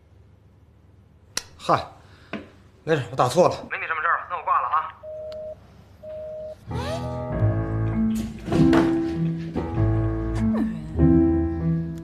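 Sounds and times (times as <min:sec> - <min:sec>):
two-note phone beep: 0:05.0 - 0:06.6.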